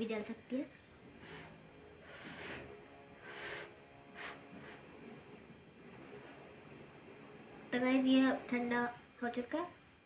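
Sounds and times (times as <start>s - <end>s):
child blowing on food: 1.2s - 4.8s.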